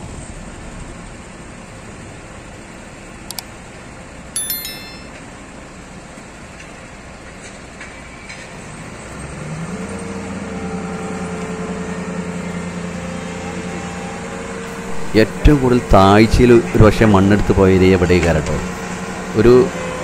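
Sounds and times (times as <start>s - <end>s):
high chime: 4.4s - 5.2s.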